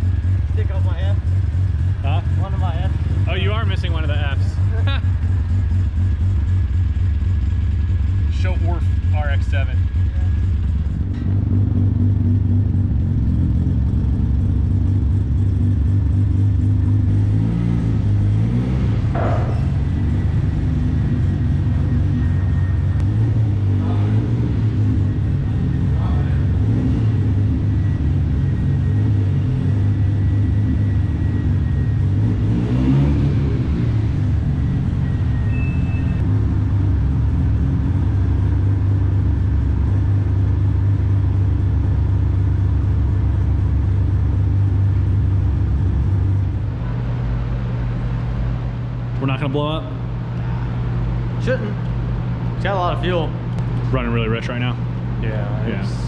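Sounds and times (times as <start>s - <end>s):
rotary engine idling and revving: 0.0s - 56.0s.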